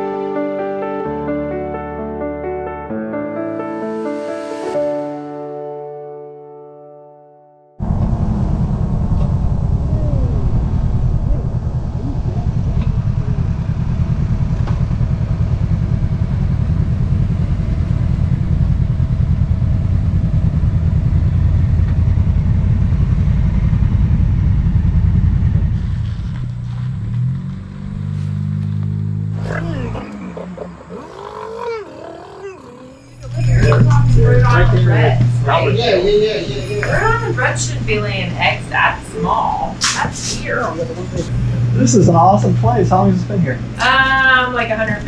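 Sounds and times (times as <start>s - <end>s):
wind noise: 7.8s - 14.2s
motorcycle engine running: 7.8s - 31.0s.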